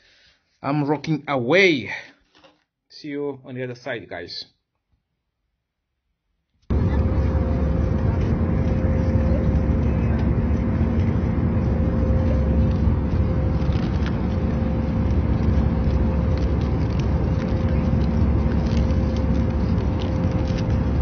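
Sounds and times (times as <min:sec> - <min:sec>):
jet engine rumble and air flow: 0:06.7 - 0:21.0
steady hum: 0:06.7 - 0:21.0.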